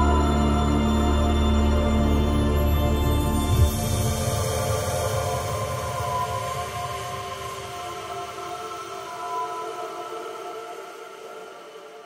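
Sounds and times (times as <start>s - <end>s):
ambient atmospheric music: 0.0s - 12.0s.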